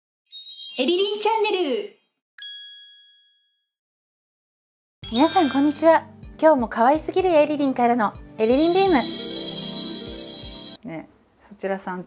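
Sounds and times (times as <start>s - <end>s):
bright two-note chime: 5.0s - 6.0s, 8.4s - 10.8s.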